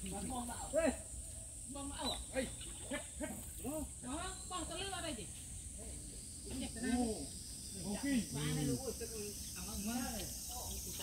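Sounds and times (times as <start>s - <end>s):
high-pitched insect chorus: 0.0s - 11.0s.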